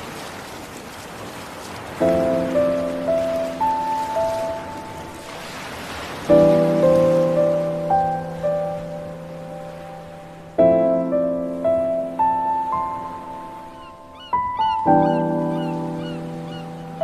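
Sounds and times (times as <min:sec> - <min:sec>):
sea surf: 0:00.0 - 0:17.0
piano chords and notes: 0:02.0 - 0:17.0.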